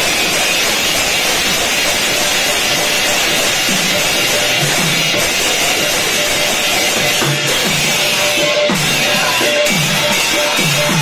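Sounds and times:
brass hand cymbals clashing: 0:00.0 - 0:11.0
hand drum: 0:00.0 - 0:11.0.

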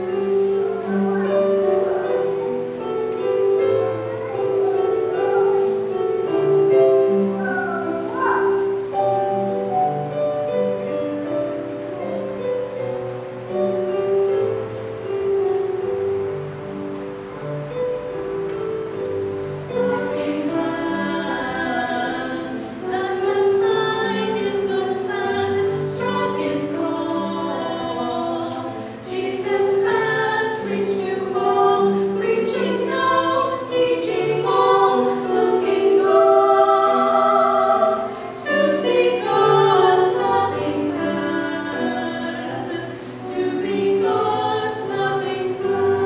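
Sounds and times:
instrumental accompaniment: 0:00.0 - 0:46.0
women singing sacred song: 0:19.7 - 0:46.0.

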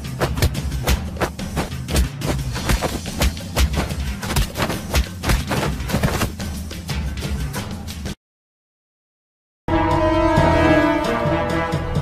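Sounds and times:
steady drumbeat: 0:00.0 - 0:06.4.

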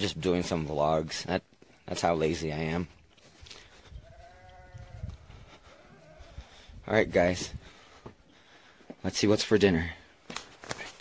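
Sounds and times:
distant animal bleating: 0:03.8 - 0:06.7.

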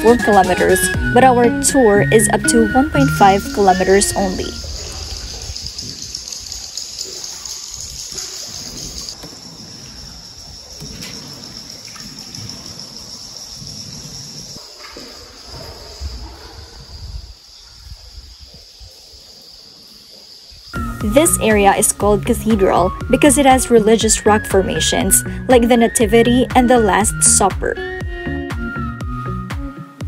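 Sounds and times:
high-pitched chirring: 0:00.0 - 0:09.2
water trickling and lapping: 0:00.0 - 0:20.2.

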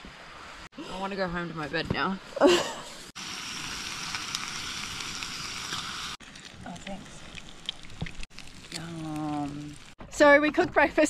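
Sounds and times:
bacon sizzling in a frying pan: 0:03.1 - 0:10.3.

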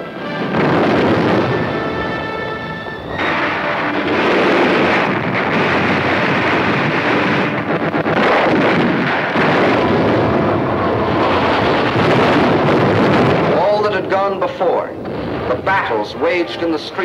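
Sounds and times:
explosions: 0:00.1 - 0:17.0
gunfire: 0:03.1 - 0:16.7.

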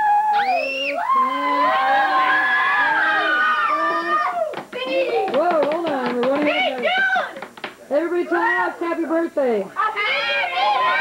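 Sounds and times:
children yelling: 0:00.0 - 0:05.3, 0:09.8 - 0:11.0.

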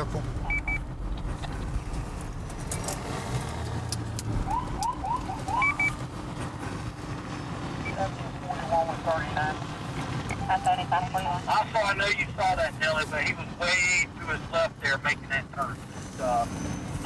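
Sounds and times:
road and engine rumble: 0:00.0 - 0:17.0.

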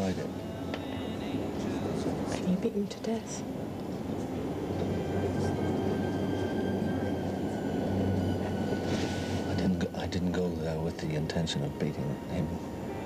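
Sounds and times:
faint high whine: 0:00.0 - 0:13.0.

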